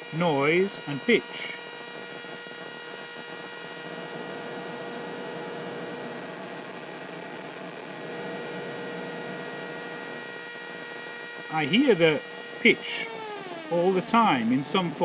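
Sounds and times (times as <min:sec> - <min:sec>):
buzzy synthesizer tone: 0:00.0 - 0:15.0.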